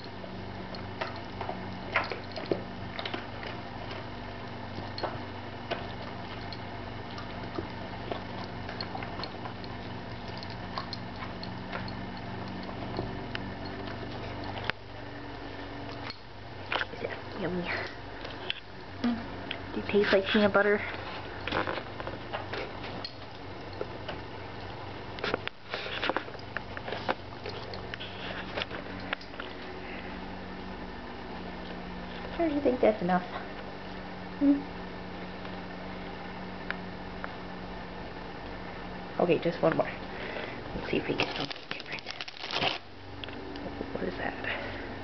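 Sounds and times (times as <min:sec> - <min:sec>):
dog chewing: 0:00.0 - 0:18.8, 0:19.5 - 0:30.0
steady low hum: 0:00.0 - 0:45.0
biscuits rustling and clicking: 0:20.8 - 0:30.1, 0:40.8 - 0:43.7
clicks and crunches: 0:41.1 - 0:43.7
hand rummaging in cardboard box: 0:41.2 - 0:42.8.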